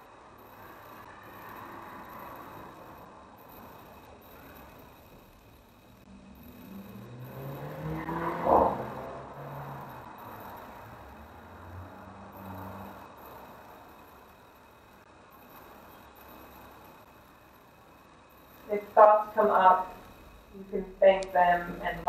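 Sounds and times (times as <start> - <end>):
motor vehicle passing by: 0.3 - 4.6, 5.9 - 14.3.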